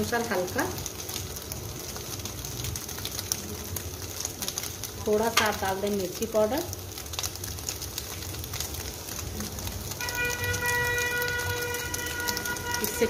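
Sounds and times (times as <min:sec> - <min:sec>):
food sizzling in butter: 0:00.0 - 0:13.0
steady horn-like tone: 0:10.0 - 0:13.0.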